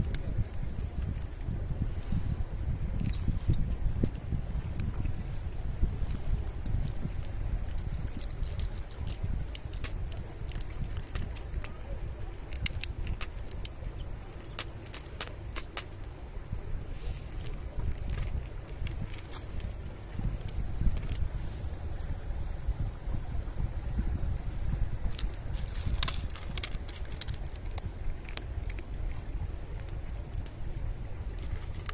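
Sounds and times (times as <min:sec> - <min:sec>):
wind rumble on microphone: 0:00.0 - 0:31.9
cats crunching dry kibble: 0:05.9 - 0:16.1, 0:17.3 - 0:21.3, 0:24.8 - 0:31.9.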